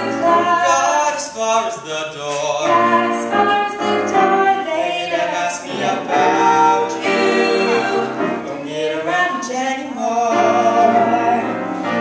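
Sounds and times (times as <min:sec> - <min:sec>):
girl and boy singing duet: 0:00.0 - 0:11.6.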